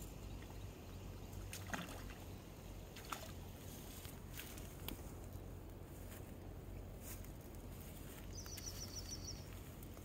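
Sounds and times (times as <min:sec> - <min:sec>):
fish splashing at water surface: 0:01.4 - 0:02.3.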